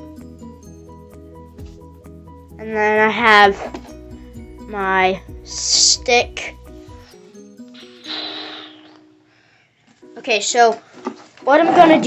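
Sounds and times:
breathy exhale: 0:07.8 - 0:09.8.

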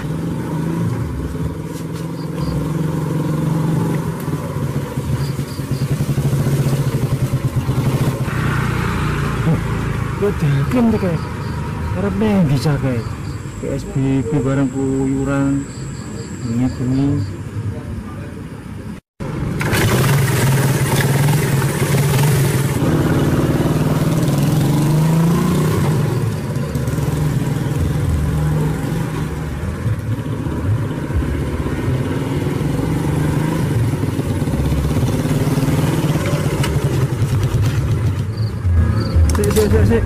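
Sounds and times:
motorcycle engine revving: 0:00.0 - 0:17.4, 0:19.2 - 0:40.0.

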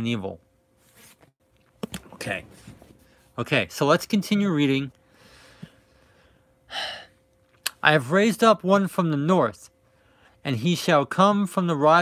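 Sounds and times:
man speaking: 0:02.0 - 0:02.6, 0:03.4 - 0:04.9, 0:07.7 - 0:09.7, 0:10.4 - 0:12.0.

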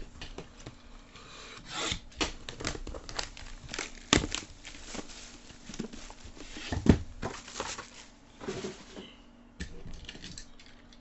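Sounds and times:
plastic wrap crinkling: 0:02.2 - 0:09.0
cardboard scraping: 0:03.9 - 0:09.0.

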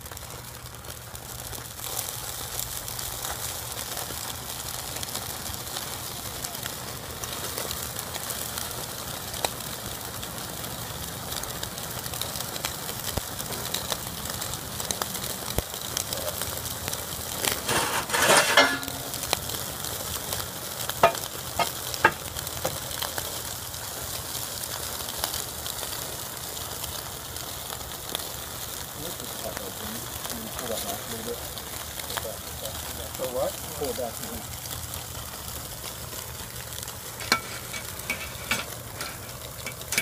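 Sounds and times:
sharp crackling pops: 0:00.0 - 0:40.0
steaks sizzling on a grill: 0:00.0 - 0:40.0.

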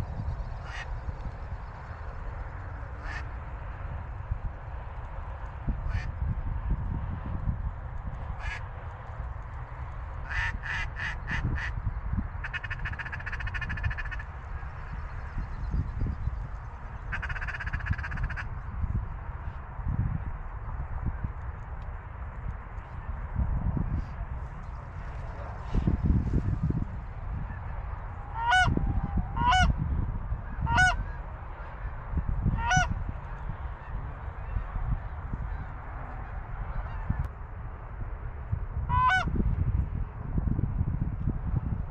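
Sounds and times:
wind rumble on microphone: 0:00.0 - 0:41.9
goose honk: 0:00.6 - 0:00.9, 0:03.0 - 0:03.3, 0:08.4 - 0:08.6, 0:10.2 - 0:11.8, 0:12.4 - 0:14.2, 0:17.1 - 0:18.5, 0:28.2 - 0:29.7, 0:30.6 - 0:31.9, 0:32.6 - 0:32.9, 0:35.5 - 0:37.2, 0:38.9 - 0:39.3.

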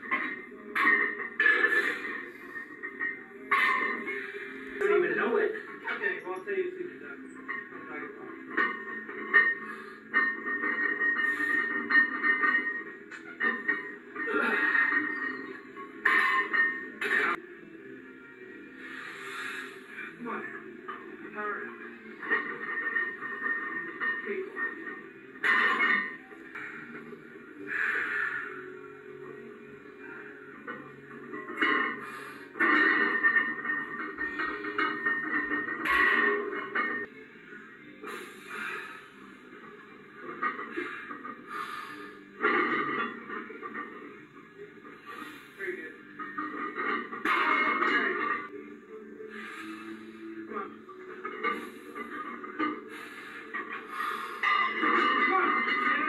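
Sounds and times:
muffled music through tv speaker: 0:00.0 - 0:56.0.

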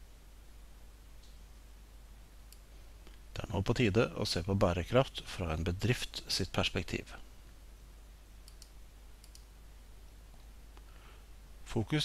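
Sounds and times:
low steady hiss: 0:00.0 - 0:12.0
computer clicks: 0:08.4 - 0:09.5.

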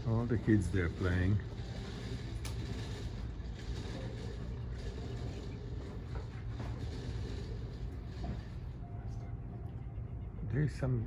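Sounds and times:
boat engine rumbling: 0:00.0 - 0:11.0.

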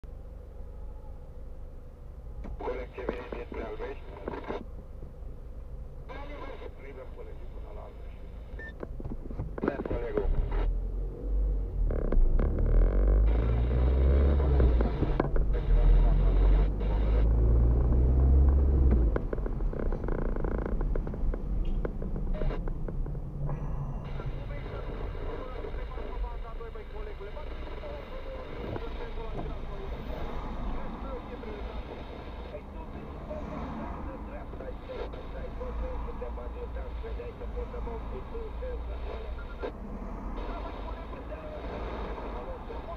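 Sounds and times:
car engine and road noise: 0:00.0 - 0:42.9.

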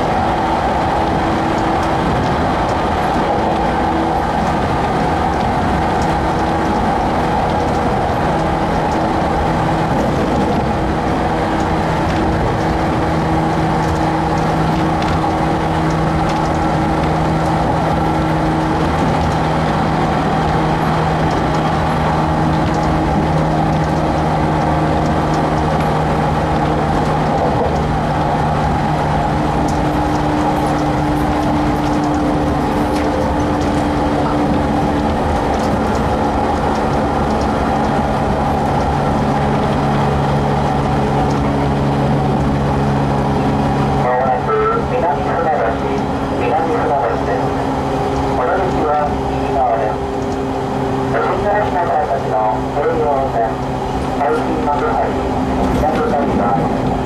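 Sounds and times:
train traction motor hum: 0:00.0 - 0:57.0
wheels rumbling on rail: 0:00.0 - 0:57.0.

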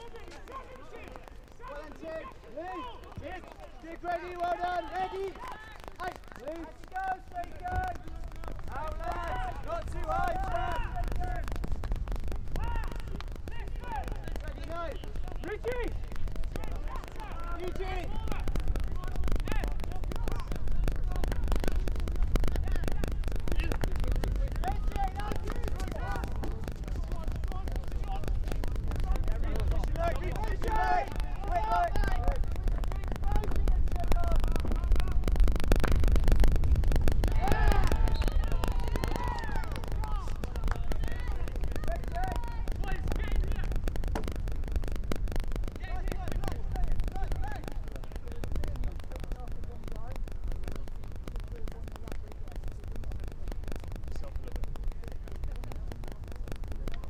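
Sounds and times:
players shouting: 0:00.0 - 0:36.0, 0:37.0 - 0:44.3, 0:45.6 - 0:49.0
steady low rumble: 0:00.0 - 0:57.0.

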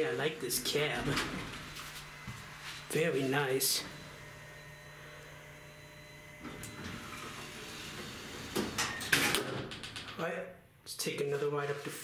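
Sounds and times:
elevator doors sliding: 0:06.5 - 0:09.6.

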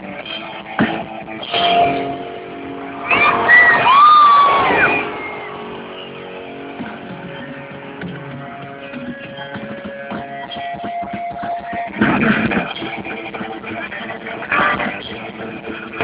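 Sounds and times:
live metal band electric guitars: 0:00.0 - 0:16.0
high gliding guitar squeals: 0:01.5 - 0:09.6.

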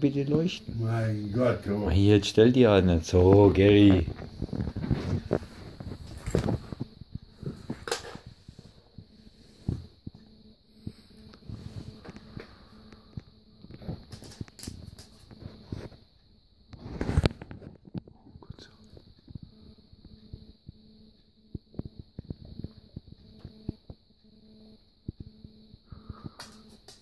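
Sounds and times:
faint steady hum: 0:00.0 - 0:27.0
high whine: 0:00.0 - 0:27.0
quiet whispering: 0:18.1 - 0:19.0.

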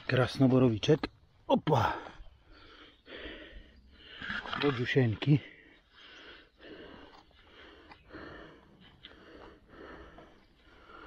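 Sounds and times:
man panting: 0:02.4 - 0:04.2, 0:05.5 - 0:11.0.

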